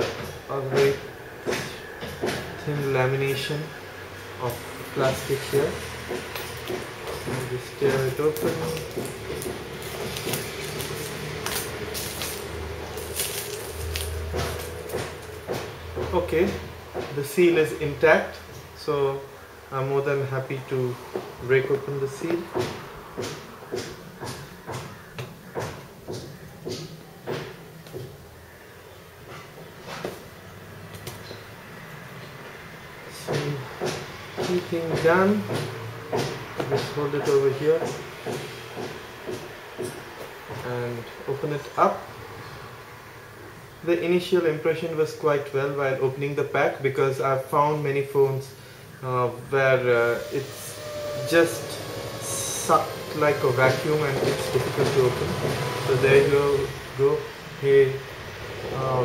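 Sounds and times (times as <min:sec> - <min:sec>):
plastic wrap crinkling and tearing: 0:08.0 - 0:15.4.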